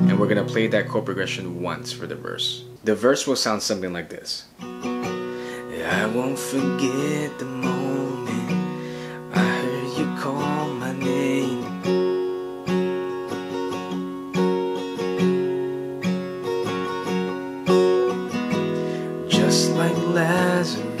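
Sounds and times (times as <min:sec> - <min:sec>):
acoustic guitar strumming: 0:00.0 - 0:02.8, 0:04.5 - 0:21.0
man singing: 0:05.5 - 0:11.8, 0:19.3 - 0:21.0.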